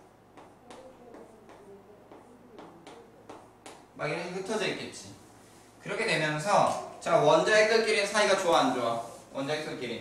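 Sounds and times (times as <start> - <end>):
chalk tapping on a chalkboard: 0.3 - 3.9.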